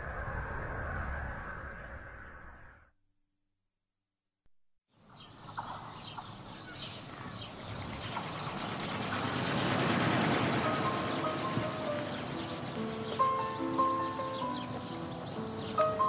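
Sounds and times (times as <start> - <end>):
birds chirping: 5.0 - 16.0
held music notes: 9.9 - 16.0.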